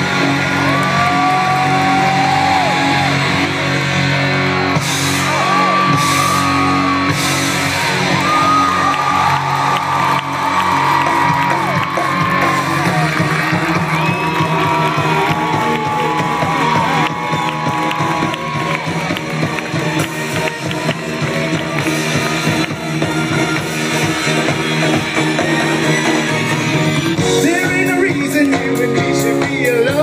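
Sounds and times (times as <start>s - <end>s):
crowd whooping: 0.0s - 27.2s
live rock band playing: 0.0s - 30.0s.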